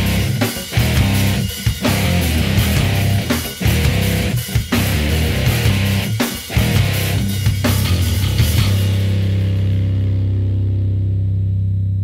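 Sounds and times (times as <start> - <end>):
sustained low music chord: 8.4 - 12.0.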